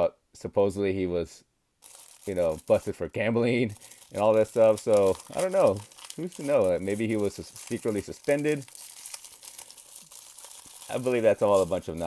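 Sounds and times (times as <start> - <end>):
foil wrapper crinkling: 1.8 - 2.9, 3.6 - 12.0.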